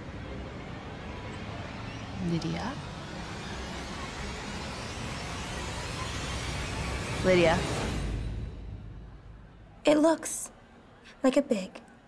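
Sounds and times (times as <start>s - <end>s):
low rumbling drone: 0.0s - 9.9s.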